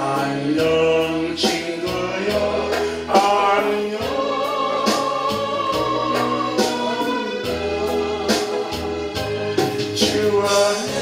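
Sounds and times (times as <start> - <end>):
man singing into a microphone: 0.0 - 4.5, 10.0 - 11.0
backing track with beat and bass: 0.0 - 11.0.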